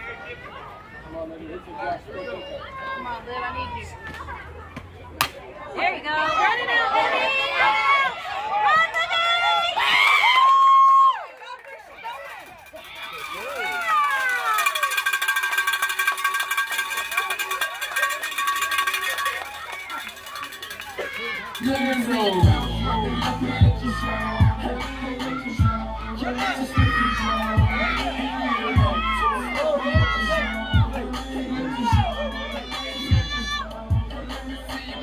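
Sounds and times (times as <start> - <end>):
children shouting and chanting: 1.8 - 10.0, 17.4 - 35.0.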